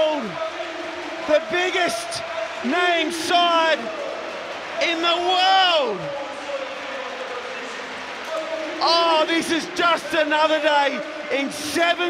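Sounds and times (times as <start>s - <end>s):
man talking: 0.0s - 4.0s, 4.8s - 12.0s
stadium crowd cheering: 0.0s - 12.0s.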